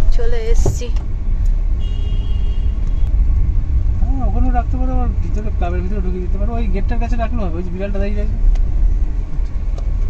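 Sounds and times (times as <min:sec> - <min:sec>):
road vehicle rumble: 0:00.0 - 0:10.0.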